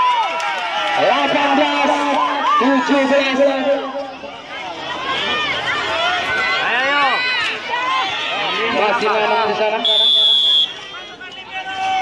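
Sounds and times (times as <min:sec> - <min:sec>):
spectators shouting: 0:00.0 - 0:12.0.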